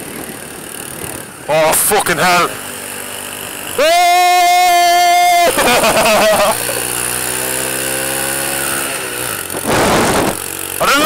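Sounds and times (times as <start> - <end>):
small motorbike engine running: 0.0 - 11.0.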